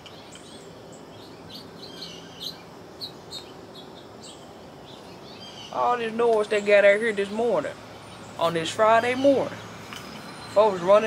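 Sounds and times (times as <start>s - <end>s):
birds chirping: 0.0s - 11.0s
faint steady background noise: 0.0s - 11.0s.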